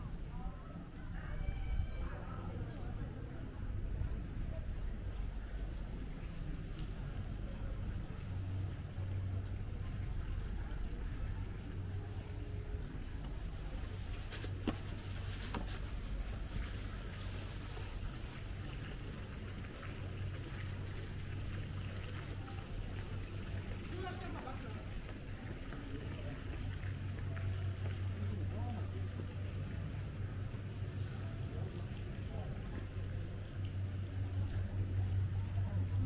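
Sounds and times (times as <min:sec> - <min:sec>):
faint distant voices: 0:00.0 - 0:36.0
steady low rumble: 0:02.1 - 0:24.0.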